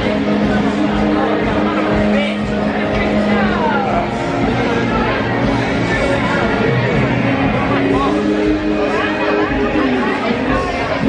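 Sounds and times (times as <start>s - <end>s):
bar music: 0.0s - 11.0s
crowd chatter: 0.0s - 11.0s.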